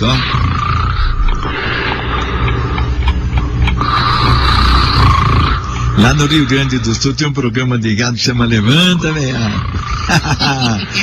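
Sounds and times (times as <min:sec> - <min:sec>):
pig-like grunting snoring: 0:00.0 - 0:01.6, 0:03.7 - 0:06.7, 0:08.7 - 0:10.5.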